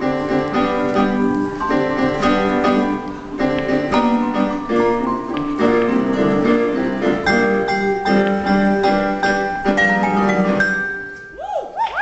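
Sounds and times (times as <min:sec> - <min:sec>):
piano chords: 0:00.0 - 0:11.6
vibraphone melody: 0:00.2 - 0:11.5.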